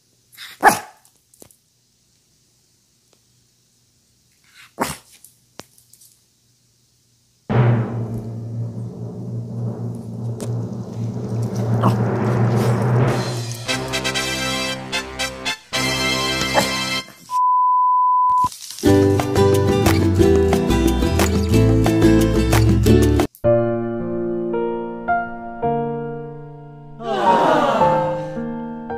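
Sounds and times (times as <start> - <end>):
dog barking: 0.4 - 1.0, 4.6 - 5.1, 16.5 - 16.8
background music: 11.7 - 17.1, 18.9 - 28.9.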